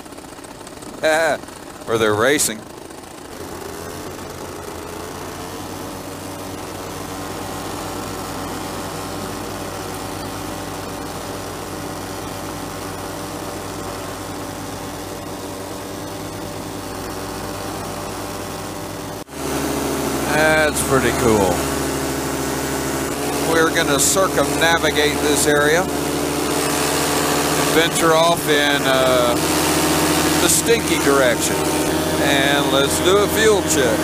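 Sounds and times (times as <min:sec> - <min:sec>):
paramotor engine drone: 0:00.0 - 0:34.0.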